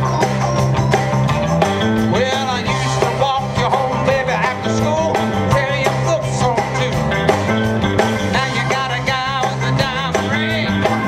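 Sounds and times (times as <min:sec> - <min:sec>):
live band playing country-rock: 0:00.0 - 0:11.0
person singing: 0:02.1 - 0:07.5, 0:08.3 - 0:11.0.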